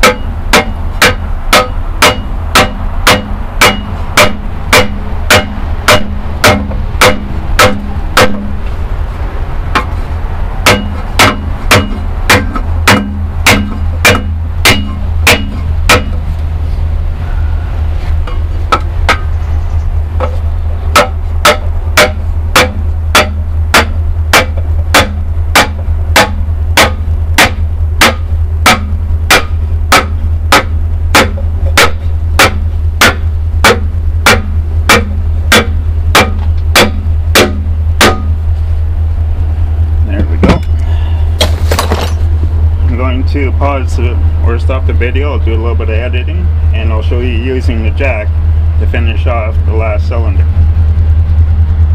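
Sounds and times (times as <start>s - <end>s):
sledgehammer striking wood: 0.0s - 8.6s, 10.7s - 16.2s, 21.0s - 38.4s, 41.4s - 42.2s
steady low hum: 0.0s - 51.9s.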